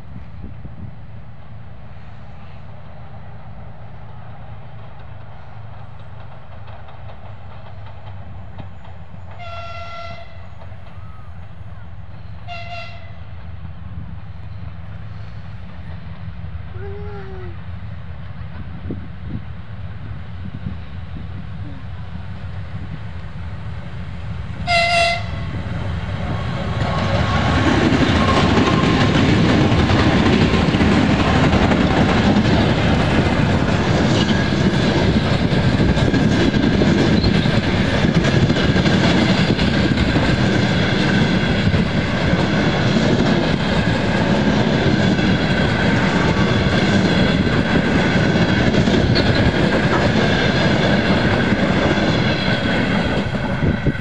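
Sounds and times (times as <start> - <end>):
train rolling past: 0.0 - 54.0
locomotive horn blast: 9.4 - 11.2, 12.5 - 13.2, 24.6 - 25.6.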